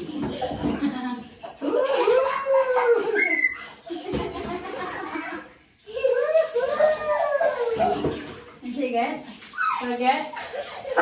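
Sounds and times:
water pouring and splashing: 0.0s - 11.0s.

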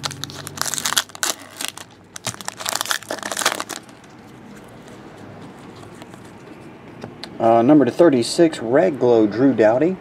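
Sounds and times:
foil wrappers crinkling: 0.0s - 4.7s.

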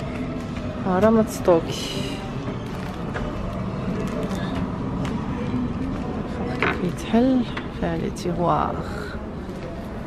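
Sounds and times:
low rumble of a busy store: 0.0s - 10.0s.

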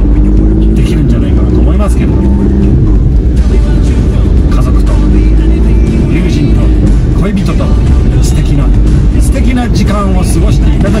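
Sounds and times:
background music: 0.0s - 11.0s
vehicle engine and tyres rumbling: 0.0s - 11.0s.

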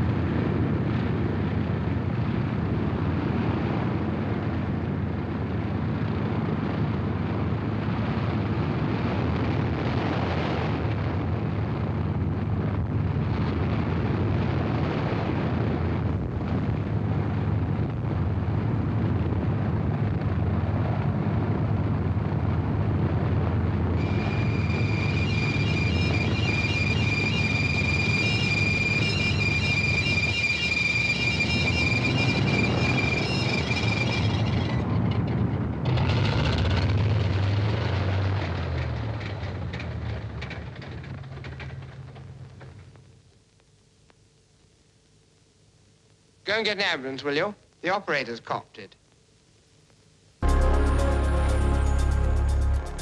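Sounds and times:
high steady whine: 0.0s - 53.0s
aircraft engines droning: 17.1s - 42.8s, 50.4s - 53.0s.

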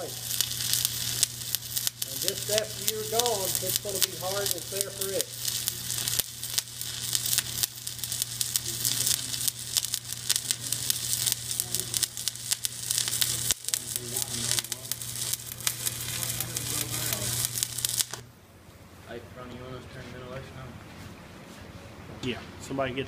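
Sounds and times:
welding arc crackling: 0.0s - 18.3s.

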